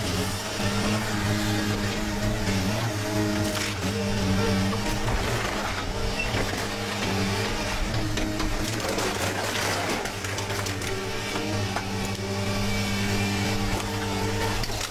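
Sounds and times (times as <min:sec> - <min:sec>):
shear tearing apart car body: 0:00.0 - 0:14.9.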